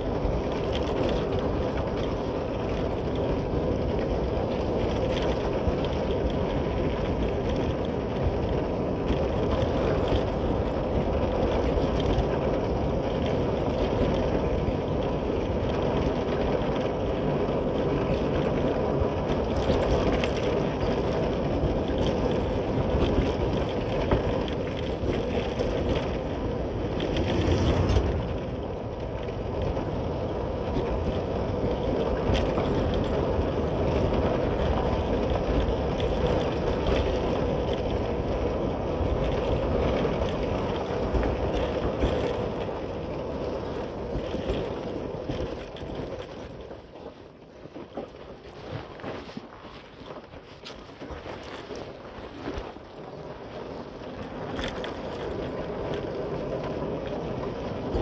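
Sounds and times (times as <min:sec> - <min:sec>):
road noise on dirt road: 0:00.0 - 0:58.0.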